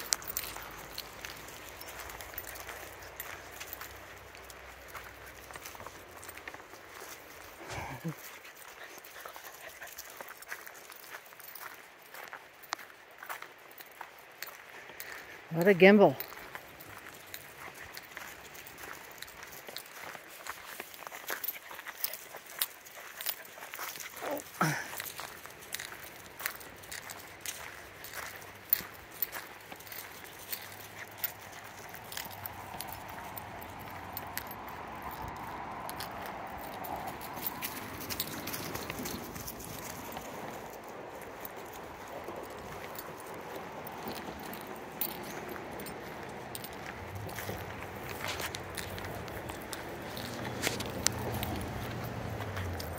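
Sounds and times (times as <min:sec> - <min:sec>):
footsteps on gravel: 0:00.0 - 0:52.9.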